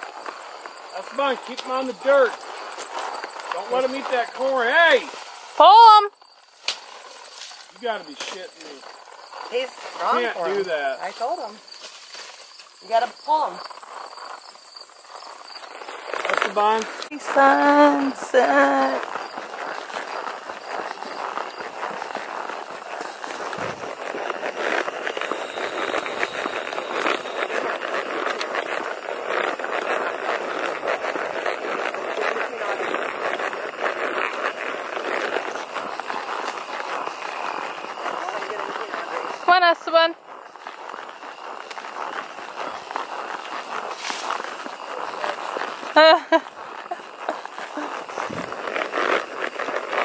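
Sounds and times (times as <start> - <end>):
horse hoofbeats on pavement: 0.0 - 50.0.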